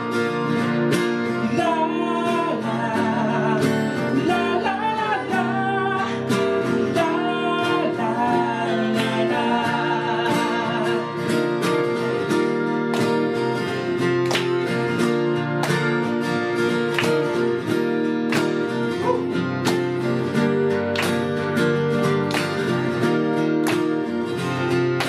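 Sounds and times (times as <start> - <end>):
steel-string acoustic guitar: 0.0 - 25.0
strummed nylon-string guitar: 0.0 - 25.0
two men singing: 1.5 - 11.4.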